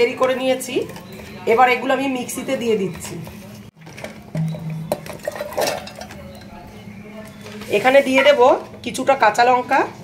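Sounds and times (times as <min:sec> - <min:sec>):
coconut chunks clattering in metal jar: 0:03.8 - 0:06.5.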